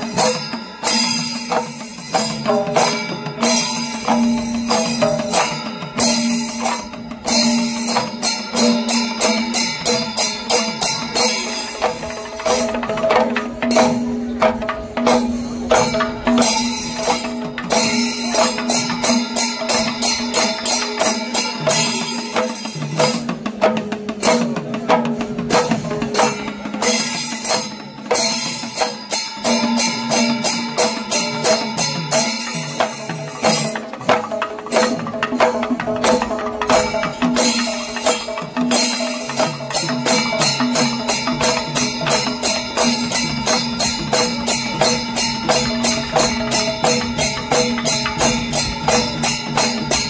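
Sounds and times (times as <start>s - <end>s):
brass cymbals ringing: 0.0s - 24.6s, 25.2s - 50.0s
hourglass drums beaten fast: 0.0s - 50.0s.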